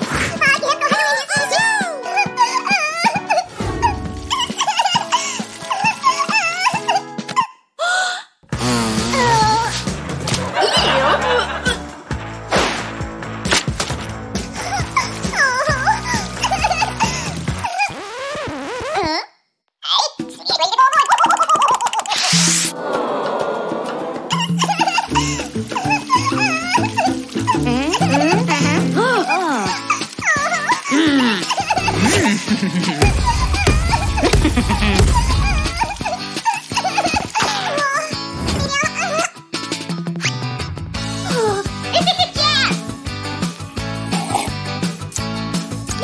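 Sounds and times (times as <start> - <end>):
background music: 0.0 - 7.5, 8.5 - 18.4, 20.2 - 46.0
cartoon character crying: 27.8 - 34.4
cartoon character wailing sobs: 30.5 - 31.9.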